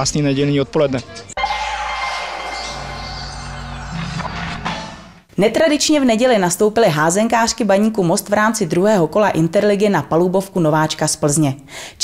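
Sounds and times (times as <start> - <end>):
electronic transition jingle: 1.4 - 5.3.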